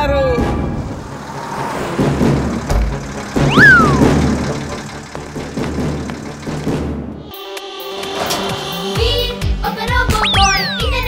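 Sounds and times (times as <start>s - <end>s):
cartoon truck engine rumble: 0.8s - 7.2s
swooping whistle: 3.4s - 4.3s, 10.1s - 11.0s.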